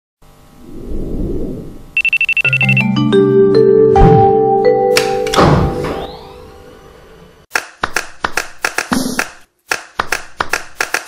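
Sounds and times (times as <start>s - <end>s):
beat of hand claps and snaps: 7.5s - 11.0s.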